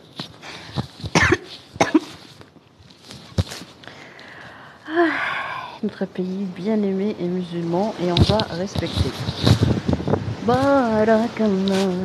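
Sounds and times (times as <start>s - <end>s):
person coughing: 1.1s - 2.2s.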